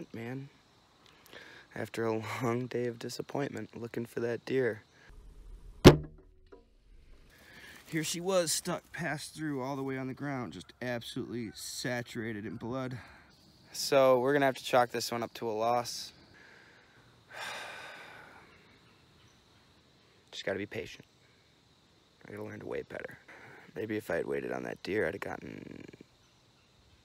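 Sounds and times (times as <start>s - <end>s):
short low hum: 5.1s - 7.3s
man sighing: 17.3s - 18.5s.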